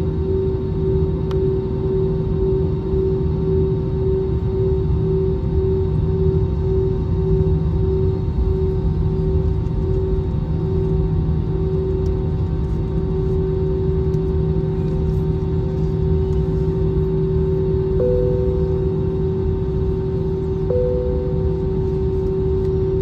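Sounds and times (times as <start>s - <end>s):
idling jet engines rumble: 0.0s - 23.0s
short higher tone: 18.0s - 19.4s, 20.7s - 22.0s.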